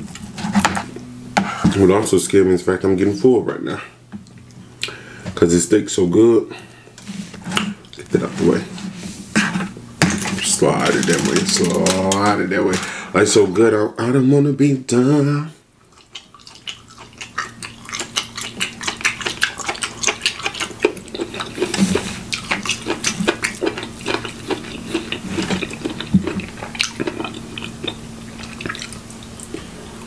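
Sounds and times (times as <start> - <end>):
faint steady hum: 0.0 - 30.0
wet chewing mouth sounds: 15.8 - 29.9.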